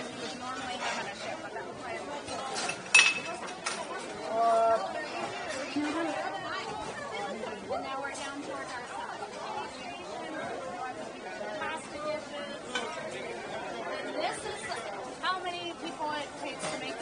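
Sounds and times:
voices chattering: 0.0 - 17.0.

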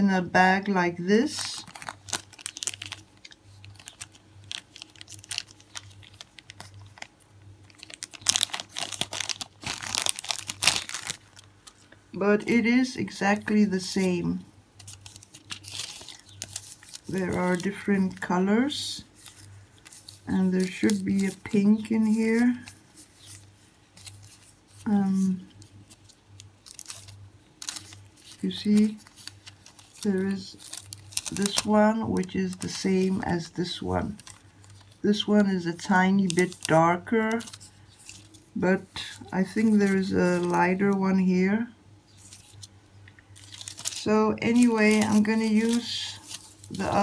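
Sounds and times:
plastic and foil crinkling: 1.2 - 14.2, 14.8 - 41.2, 42.1 - 47.0
plastic sheets rustling: 1.2 - 14.2, 14.8 - 41.0, 42.1 - 47.0.

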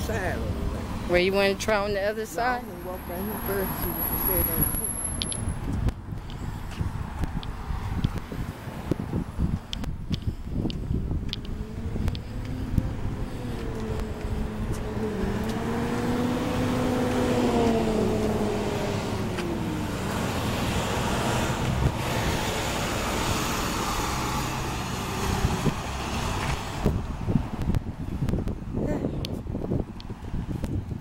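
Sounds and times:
road noise rush: 0.0 - 31.0
vehicle engine drone: 0.0 - 31.0.

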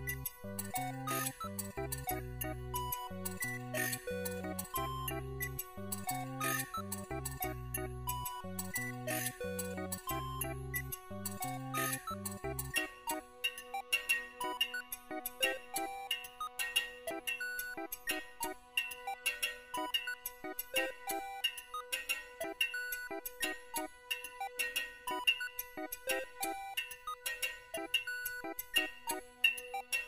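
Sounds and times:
electronic beeping notes and ticks: 0.0 - 30.0.

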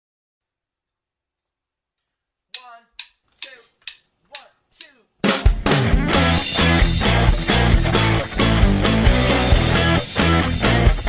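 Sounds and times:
drum hits: 5.2 - 10.2
full band playing loud: 5.5 - 11.0.

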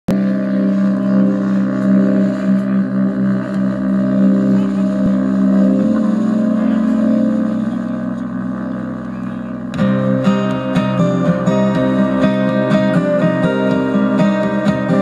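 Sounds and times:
live band droning intro: 0.1 - 15.0.

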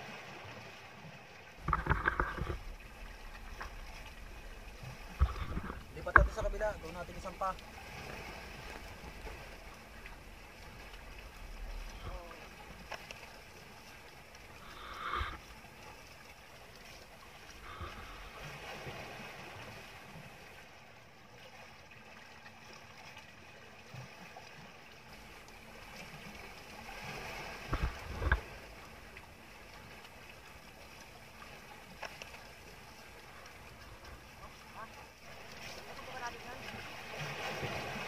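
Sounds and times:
water splashing and lapping: 0.0 - 38.0.

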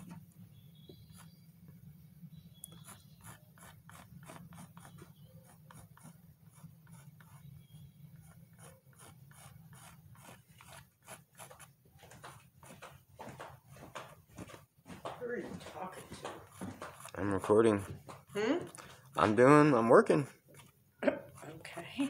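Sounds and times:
pencil scratching on paper: 0.9 - 1.4, 2.7 - 14.2, 15.6 - 22.0.

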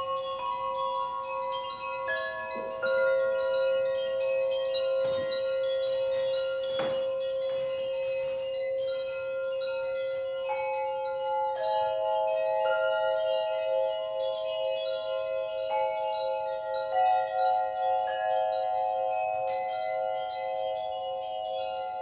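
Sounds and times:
metal tubes ringing: 0.0 - 22.0.

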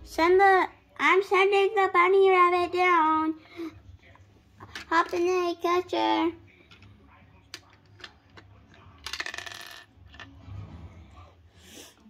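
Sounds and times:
plastic toy pieces clicking and rattling: 7.5 - 10.3.

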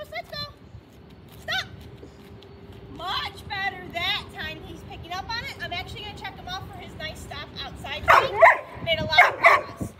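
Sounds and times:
dog barking: 8.1 - 9.8.

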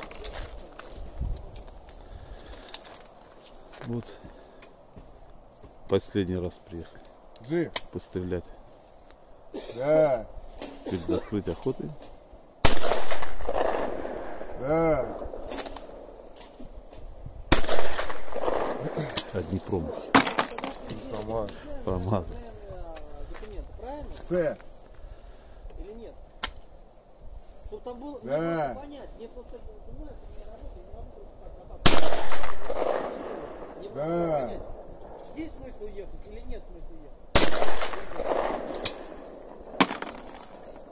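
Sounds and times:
shotgun shot echoing: 12.6 - 16.0, 17.5 - 20.6, 31.8 - 33.8, 37.3 - 40.3.

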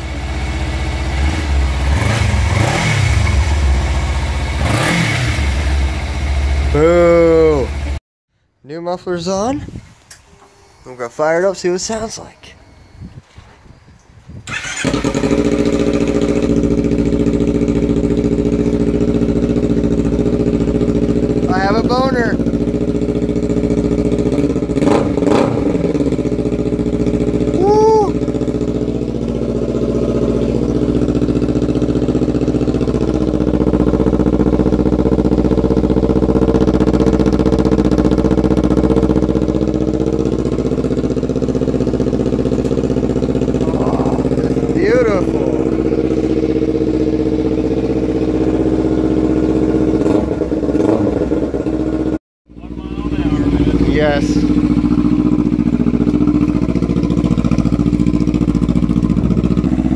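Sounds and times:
motorcycle engine idling: 0.0 - 8.0, 14.5 - 59.9.

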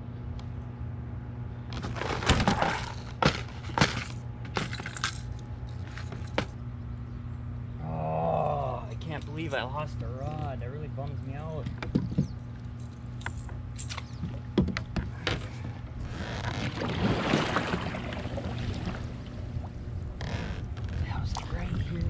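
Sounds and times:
paddle splashing through water: 16.5 - 19.8.

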